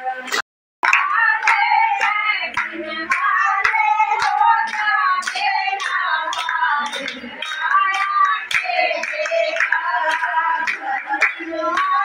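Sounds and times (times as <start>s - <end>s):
women singing together: 0.0s - 12.0s
rhythmic hand clapping: 0.2s - 12.0s.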